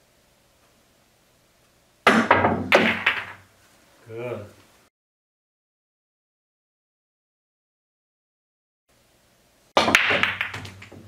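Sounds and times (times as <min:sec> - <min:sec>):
pool cue striking ball: 0:02.1 - 0:03.4, 0:09.8 - 0:11.0
billiard balls clacking: 0:02.1 - 0:03.5, 0:09.8 - 0:11.0.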